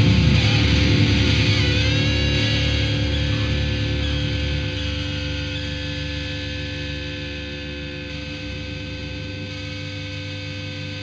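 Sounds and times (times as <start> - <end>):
distorted electric guitar drone: 0.0 - 11.0.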